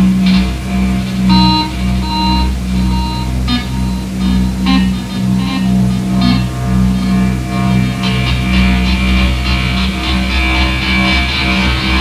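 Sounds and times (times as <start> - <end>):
low electronic drone: 0.0 - 12.0
short high-pitched beeps: 1.3 - 6.4.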